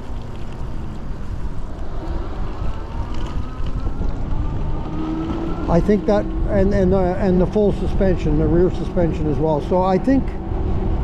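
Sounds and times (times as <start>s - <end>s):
road noise rumble: 0.0s - 11.0s
wind buffeting microphone: 0.0s - 11.0s.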